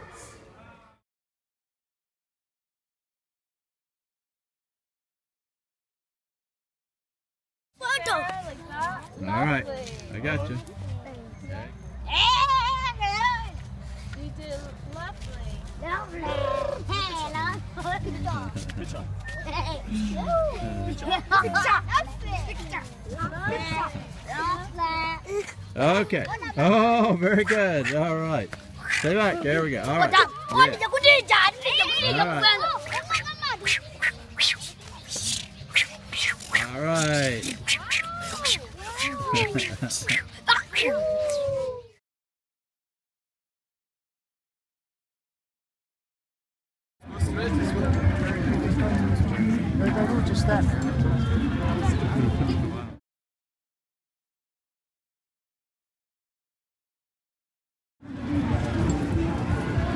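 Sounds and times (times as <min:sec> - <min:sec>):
children shouting and squealing: 0:12.1 - 0:13.6, 0:15.8 - 0:18.0, 0:30.0 - 0:42.0
child's excited squeal: 0:40.5 - 0:42.0.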